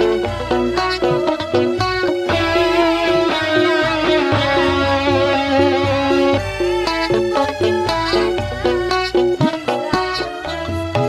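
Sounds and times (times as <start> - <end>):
live band music: 0.0 - 11.0.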